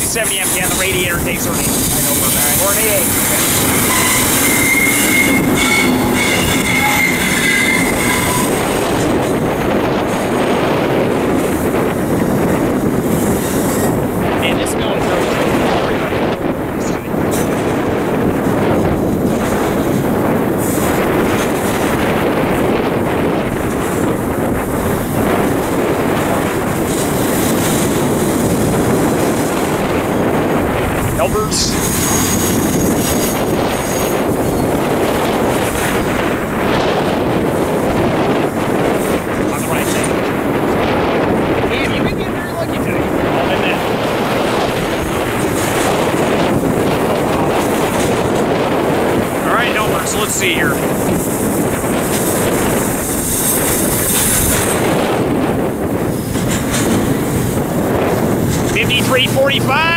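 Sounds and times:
train wheels rumbling and rattling: 0.0s - 59.9s
high wheel squeal: 0.3s - 9.5s, 31.7s - 34.7s.

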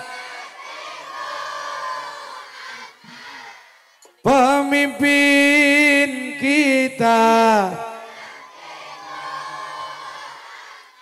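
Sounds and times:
many voices singing together: 0.0s - 4.5s, 7.0s - 11.0s.

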